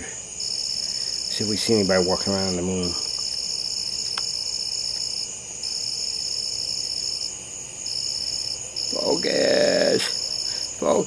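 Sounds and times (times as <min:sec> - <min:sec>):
night insects trilling: 0:00.0 - 0:11.0.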